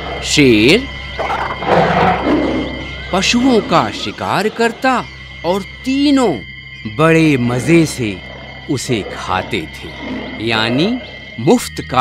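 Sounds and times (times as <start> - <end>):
lion roaring: 0.0 - 4.6, 7.7 - 11.4.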